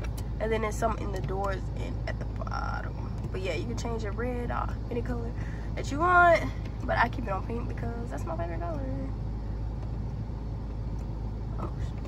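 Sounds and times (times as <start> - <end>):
car cabin hum: 0.0 - 12.0.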